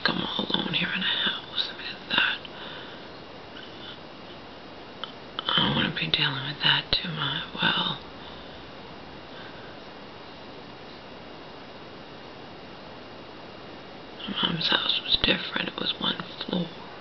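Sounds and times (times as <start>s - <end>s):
woman speaking softly: 0.0s - 2.4s, 5.4s - 8.0s, 14.2s - 16.9s.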